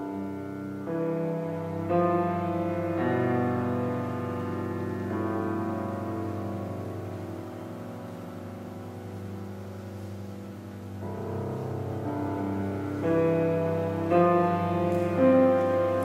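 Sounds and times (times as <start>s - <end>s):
bowed cello and double bass: 0.0s - 16.0s
piano: 0.0s - 16.0s.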